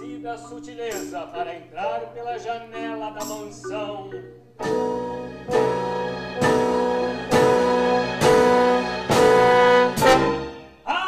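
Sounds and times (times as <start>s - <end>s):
jazz ensemble playing held chords: 4.6s - 10.8s.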